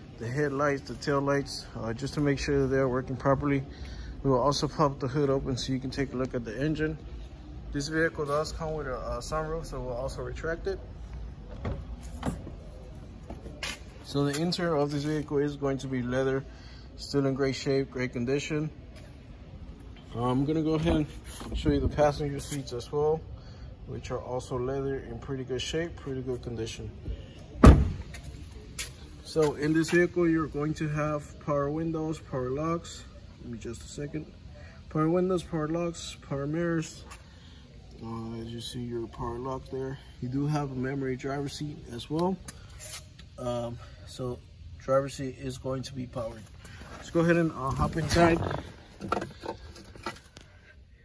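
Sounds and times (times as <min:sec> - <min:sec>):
car door shutting thud: 0:27.6 - 0:28.2.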